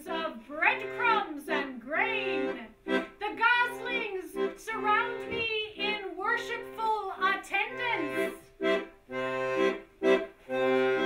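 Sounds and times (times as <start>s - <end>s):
woman singing: 0.0s - 8.1s
low accordion tones: 0.0s - 11.0s.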